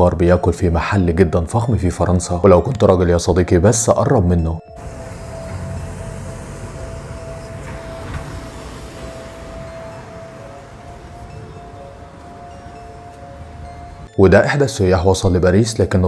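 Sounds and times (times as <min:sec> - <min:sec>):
steady high-pitched tone: 0:04.8 - 0:14.1.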